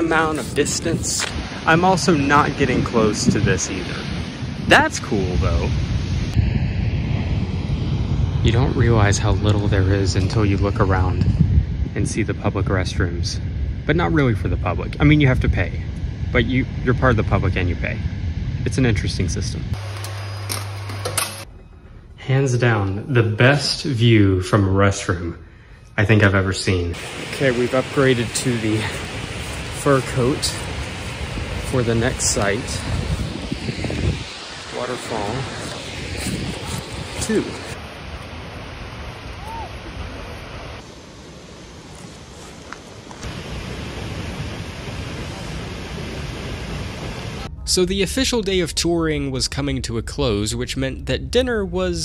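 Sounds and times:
wind on microphone: 0.0s - 19.8s, 26.9s - 41.0s
steady low hum: 0.0s - 39.3s, 43.0s - 52.0s
waterfall rushing: 27.0s - 33.6s, 43.2s - 47.5s.

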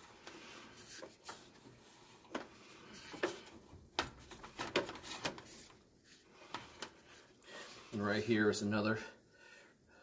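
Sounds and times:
irregular clicks and knocks: 2.2s - 5.6s.

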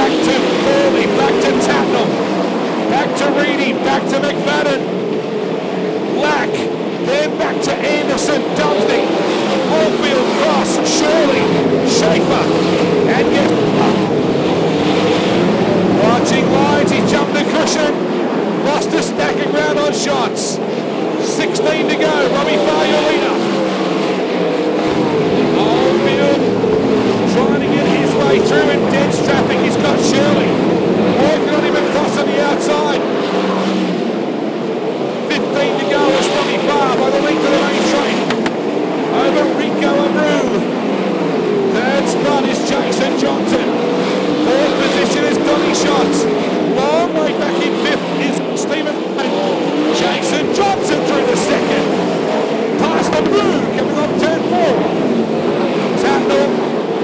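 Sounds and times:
racing car engines at full throttle: 0.0s - 57.0s.

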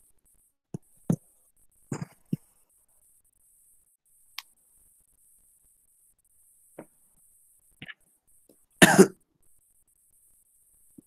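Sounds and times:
person coughing: 1.9s - 2.4s, 8.8s - 9.2s.

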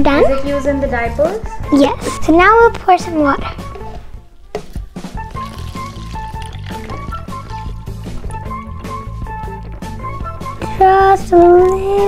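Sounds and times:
background music: 0.0s - 12.0s
water pouring into plastic cup: 4.6s - 9.0s.

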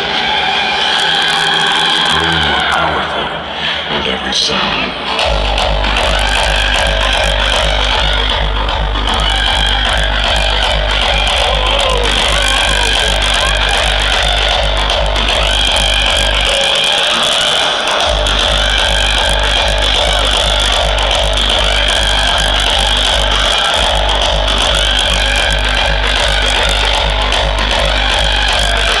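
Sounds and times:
heavy kick drum: 5.2s - 16.7s, 18.0s - 29.0s.

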